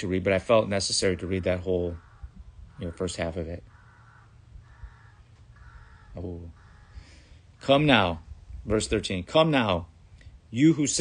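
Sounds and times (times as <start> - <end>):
crow cawing: 1.0 - 7.7.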